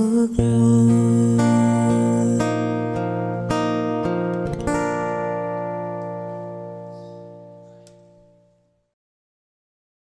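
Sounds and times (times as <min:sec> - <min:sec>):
acoustic guitar chord ringing: 0:00.0 - 0:08.8.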